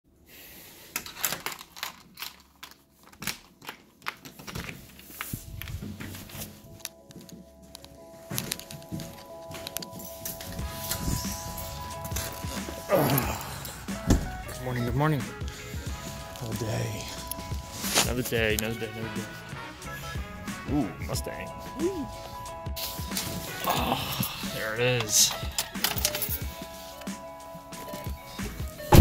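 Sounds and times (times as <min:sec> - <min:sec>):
footsteps and knocks: 0:04.2 - 0:12.8, 0:13.9 - 0:14.6
music with sustained tones: 0:05.3 - 0:29.0.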